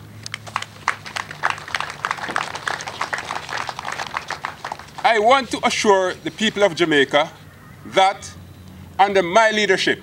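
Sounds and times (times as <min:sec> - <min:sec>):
audience clapping: 0:00.3 - 0:05.7.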